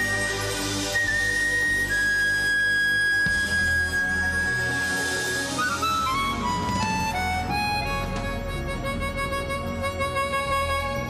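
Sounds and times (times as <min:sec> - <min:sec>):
harmonica holding high notes: 0:00.0 - 0:11.0
double bass: 0:05.8 - 0:11.0.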